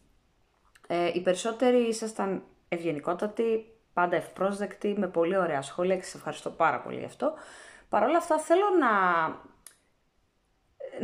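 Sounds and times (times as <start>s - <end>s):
woman speaking: 0.8s - 9.6s, 10.8s - 11.0s.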